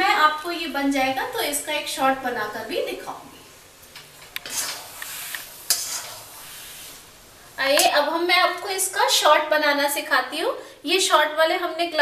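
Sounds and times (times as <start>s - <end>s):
food sizzling: 0.0s - 10.2s
spatula scraping a pan: 4.2s - 7.1s.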